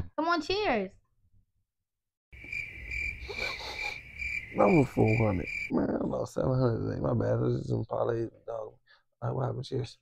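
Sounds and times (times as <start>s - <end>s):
crickets chirping: 2.4s - 7.0s.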